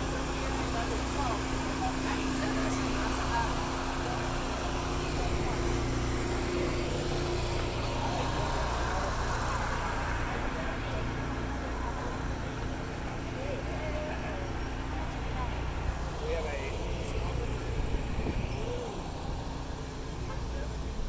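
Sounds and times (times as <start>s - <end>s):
distant indistinct voices: 0.0s - 21.0s.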